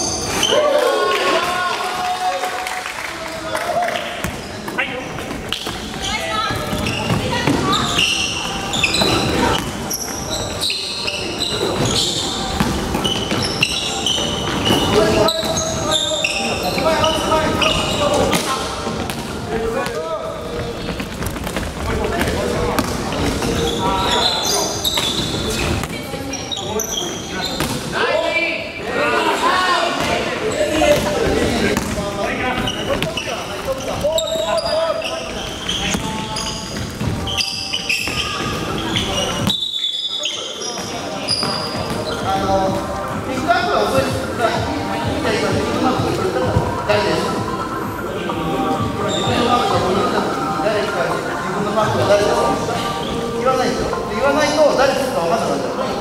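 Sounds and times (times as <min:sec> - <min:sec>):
sneakers squeaking: 0:00.0 - 0:00.9, 0:04.1 - 0:28.9, 0:29.7 - 0:56.0.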